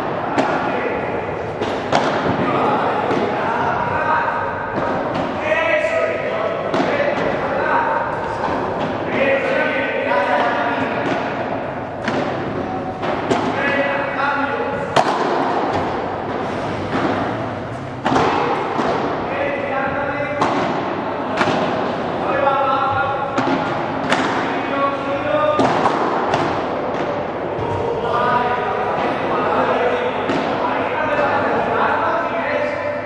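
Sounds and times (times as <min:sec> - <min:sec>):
padel ball struck by paddles: 0:01.6 - 0:03.4, 0:06.6 - 0:07.4, 0:10.4 - 0:13.9, 0:14.8 - 0:17.4, 0:18.0 - 0:19.3, 0:19.9 - 0:22.2, 0:23.0 - 0:24.8, 0:25.5 - 0:27.8, 0:30.2 - 0:30.6.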